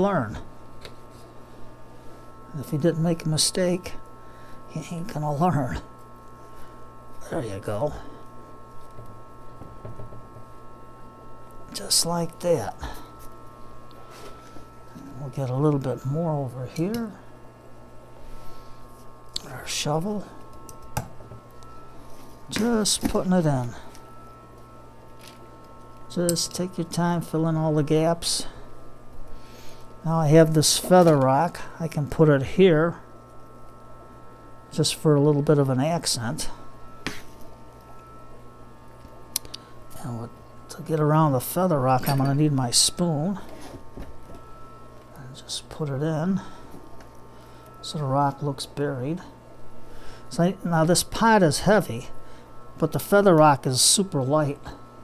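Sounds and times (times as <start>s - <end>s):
faint thin whine: 0.0s - 55.0s
steady electrical hum: 0.0s - 55.0s.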